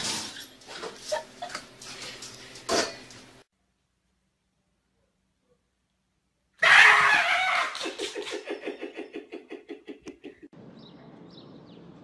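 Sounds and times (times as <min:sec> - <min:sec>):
person screaming: 0:06.6 - 0:07.8.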